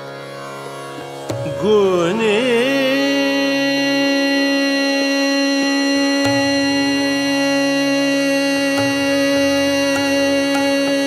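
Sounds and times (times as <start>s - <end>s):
person singing a long note: 1.6s - 11.0s.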